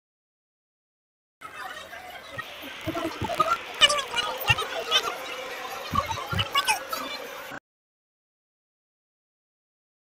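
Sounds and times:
voices: 1.4s - 7.6s.

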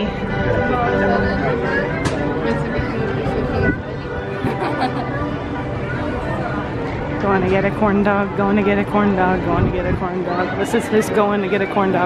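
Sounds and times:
chatter of voices: 0.0s - 12.0s.

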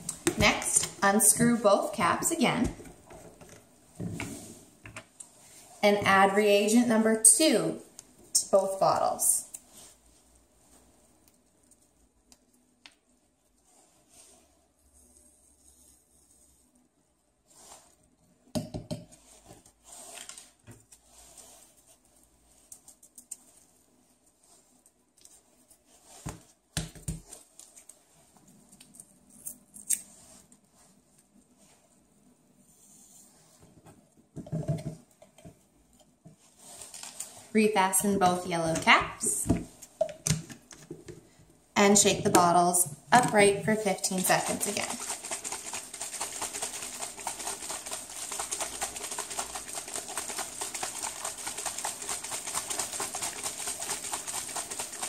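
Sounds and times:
powder packets rustling: 36.5s - 39.4s, 43.2s - 55.0s.

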